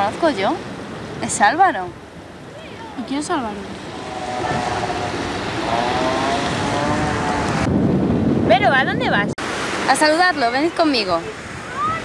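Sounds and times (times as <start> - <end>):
surf washing: 0.0 - 12.0
wind on microphone: 0.0 - 12.0
distant engine droning: 3.5 - 7.7.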